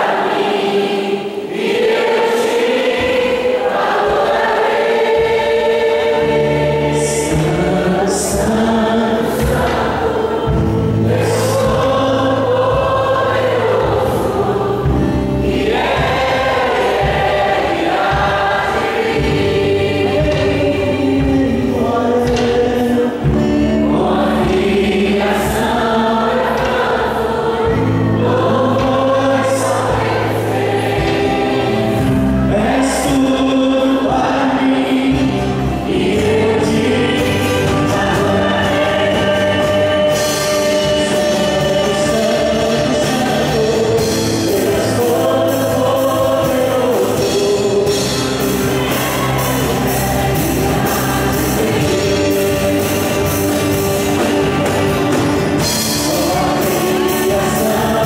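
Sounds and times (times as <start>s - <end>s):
worship band playing: 0.0s - 58.0s.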